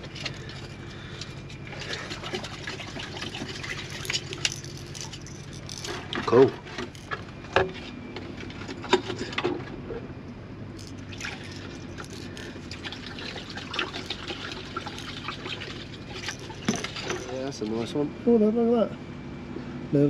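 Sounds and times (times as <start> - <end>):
steady low hum: 0.0 - 20.0
water trickling: 1.7 - 5.9, 10.8 - 17.4
plastic jigs clicking and rattling: 3.7 - 6.1, 6.8 - 7.2, 10.8 - 17.4.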